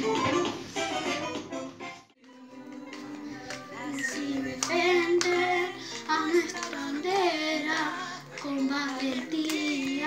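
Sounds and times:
recorded musical accompaniment: 0.0s - 10.0s
child singing: 2.3s - 10.0s.

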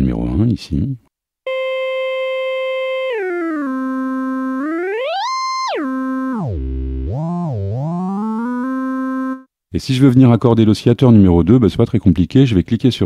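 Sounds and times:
synthesizer note changing pitch: 1.5s - 9.5s.

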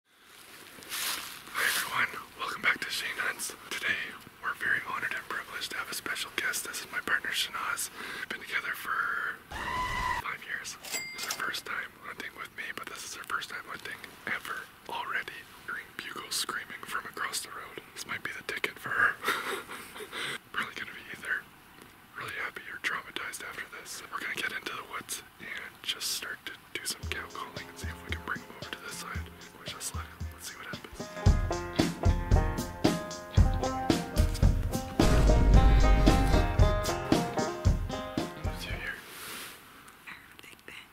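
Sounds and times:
person whispering: 1.5s - 9.5s, 10.2s - 19.2s, 20.5s - 21.5s, 22.1s - 31.0s, 38.4s - 39.0s, 40.1s - 40.9s
whispered talk: 22.2s - 30.9s
background music with low bass: 27.0s - 38.9s.

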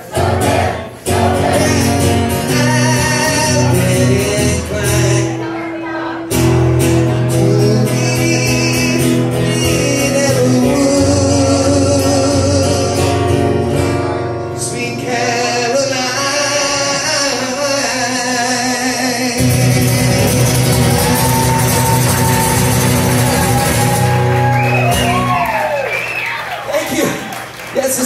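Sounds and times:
man singing: 0.0s - 21.4s
acoustic guitar strumming: 0.0s - 25.7s.

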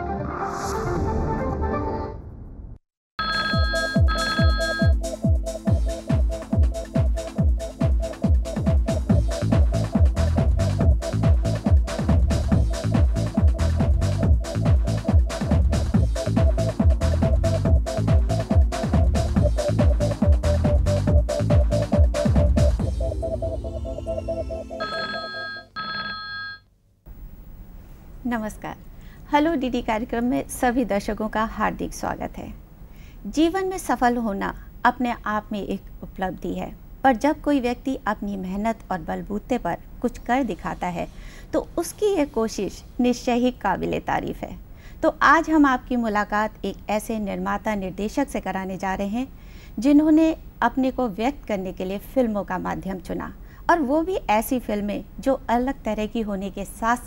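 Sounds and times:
telephone ringing: 3.2s - 5.0s, 24.7s - 26.7s
electronic theme music with kick drum: 3.6s - 24.9s
television ident music: 14.3s - 25.2s.

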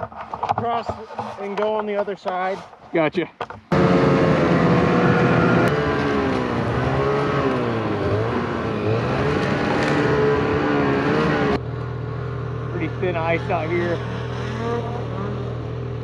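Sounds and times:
snowmobile engine revving: 3.7s - 11.7s, 12.6s - 16.0s.

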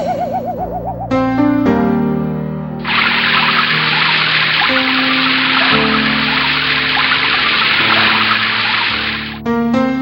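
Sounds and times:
water pouring and splashing: 2.8s - 9.4s.

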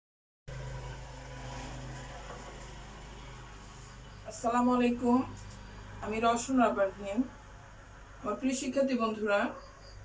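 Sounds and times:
steady low hum: 0.5s - 10.0s.

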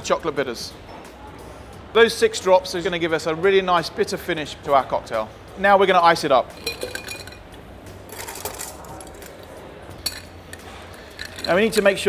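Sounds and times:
ice cubes clinking in a glass: 6.6s - 7.5s, 8.1s - 9.4s, 10.0s - 12.0s.

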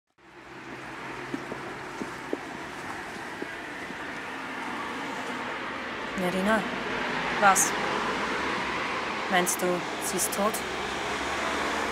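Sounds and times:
rushing outdoor background noise: 0.2s - 11.9s.

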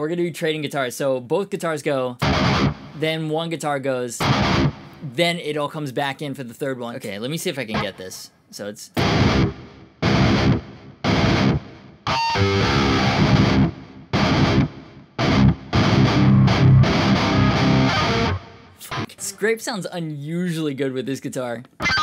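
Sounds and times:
distorted electric guitar chugging: 2.2s - 3.0s, 4.2s - 5.0s, 9.0s - 19.2s.

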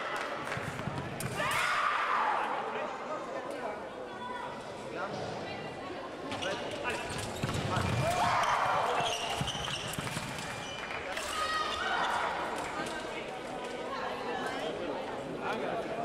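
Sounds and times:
voices in a hall: 0.0s - 16.0s
loud shout: 1.3s - 2.7s.

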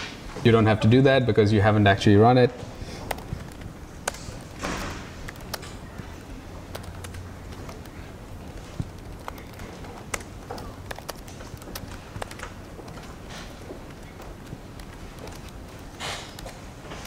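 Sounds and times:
laptop keyboard typing: 2.9s - 17.0s.

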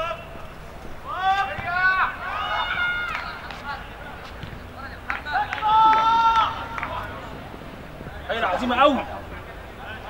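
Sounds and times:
men shouting: 5.3s - 7.2s.

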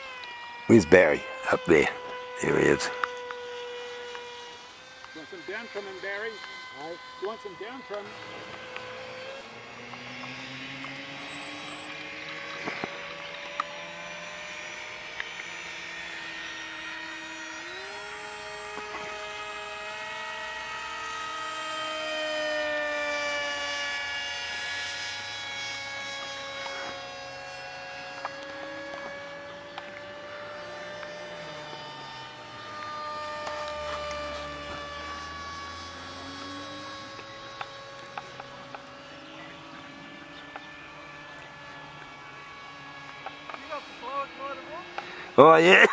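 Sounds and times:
model aeroplane propeller drone: 0.0s - 45.9s.

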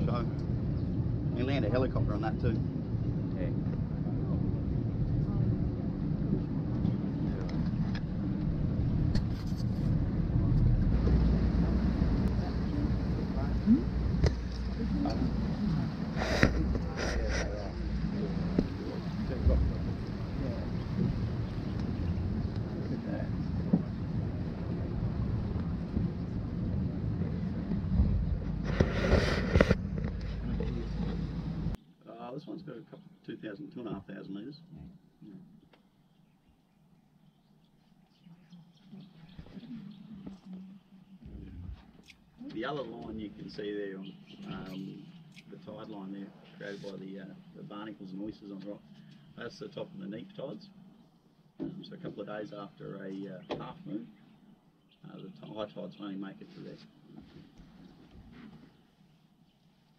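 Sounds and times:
boat engine rumbling: 0.0s - 31.8s, 39.5s - 42.3s
wind on microphone: 0.0s - 31.8s, 38.9s - 42.0s.

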